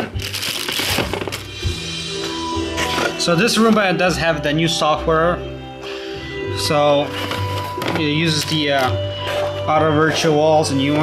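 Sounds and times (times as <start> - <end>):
plastic bag crinkling: 0.0 - 1.5
faint background music: 0.0 - 11.0.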